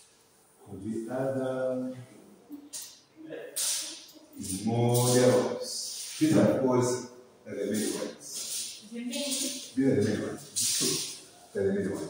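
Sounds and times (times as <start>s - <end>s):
man talking: 0.6s - 2.2s, 4.4s - 8.4s, 9.8s - 12.0s.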